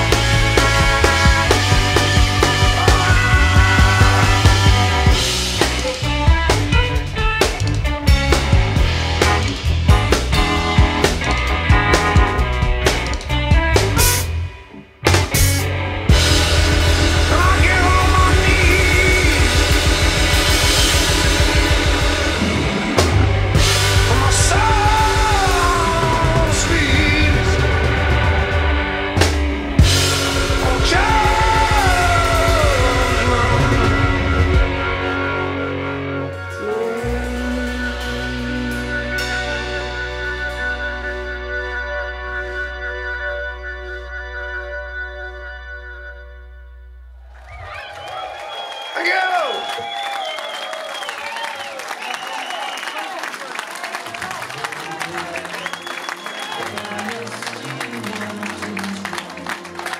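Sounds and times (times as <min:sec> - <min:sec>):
rock band playing live: 0:00.0 - 0:46.3, 0:53.9 - 0:59.9
electric guitar and keyboard chord: 0:00.0 - 0:47.0.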